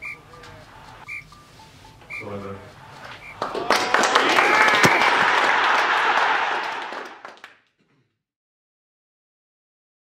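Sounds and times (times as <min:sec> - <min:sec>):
small audience applauding: 0:03.4 - 0:07.8.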